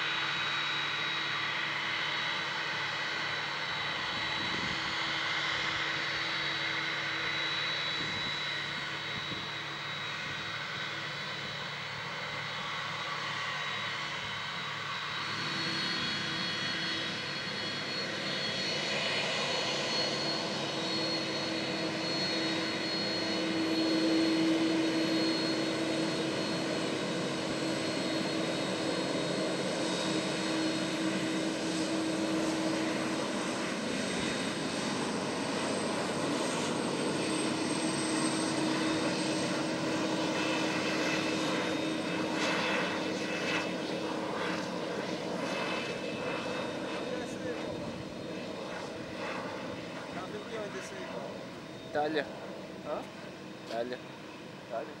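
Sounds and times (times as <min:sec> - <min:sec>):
jet engines whining: 0:00.0 - 0:55.0.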